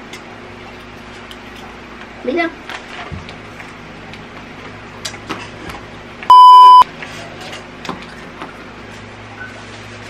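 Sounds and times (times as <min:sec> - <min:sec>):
censor bleep: 0:06.3 - 0:06.8.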